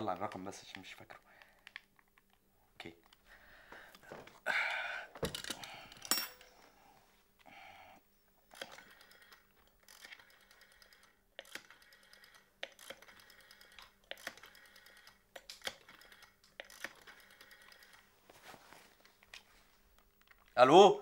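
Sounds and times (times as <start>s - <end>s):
rotary telephone dial clicking: 8.5s - 18.1s.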